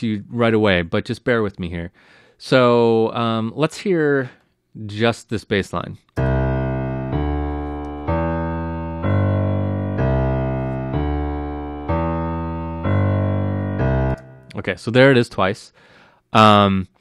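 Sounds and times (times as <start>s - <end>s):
keyboard bass notes: 6.2s - 14.6s.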